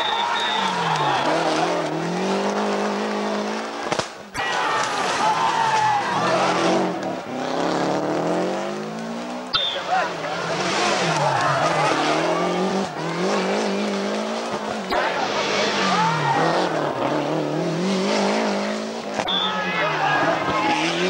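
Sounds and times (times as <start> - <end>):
rally car engines revving: 0.0 - 21.0.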